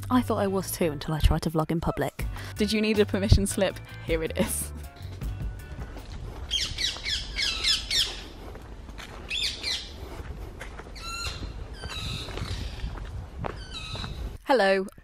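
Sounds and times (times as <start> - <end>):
birds chirping: 4.4 - 14.4
bird whistled notes: 6.5 - 8.2.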